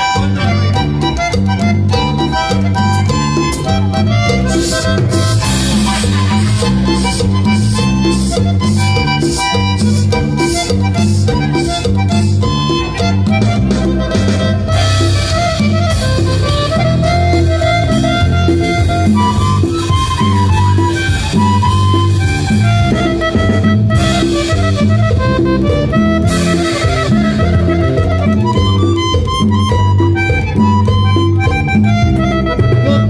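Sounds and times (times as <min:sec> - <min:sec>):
button accordion melody: 0:00.0 - 0:33.0
electric bass line: 0:00.0 - 0:33.0.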